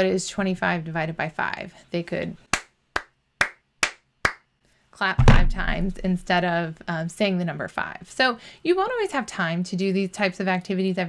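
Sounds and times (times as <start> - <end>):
person clapping hands: 2.5 - 4.5.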